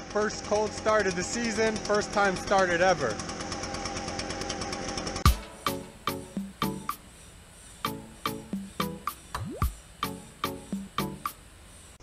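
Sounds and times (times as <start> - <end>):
leaf blower engine idling: 0.0 - 9.3.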